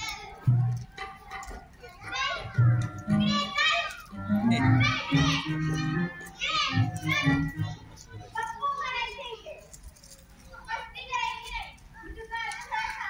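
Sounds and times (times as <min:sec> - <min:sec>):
children speaking: 0:00.0 - 0:13.0
background music: 0:02.6 - 0:08.3.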